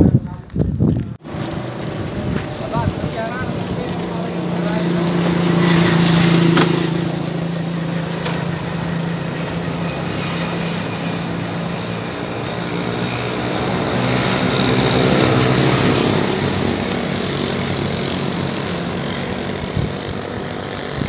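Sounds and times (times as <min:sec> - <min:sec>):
engine humming steadily: 0:01.2 - 0:21.0.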